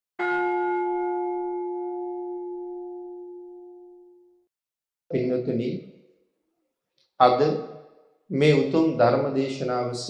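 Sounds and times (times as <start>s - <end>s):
bell ringing: 0.2s - 3.9s.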